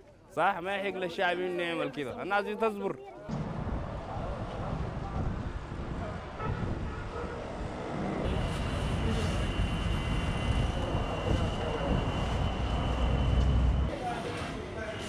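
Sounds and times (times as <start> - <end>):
low machine rumble: 3.4 - 13.9
high-pitched whine: 7.9 - 14.2.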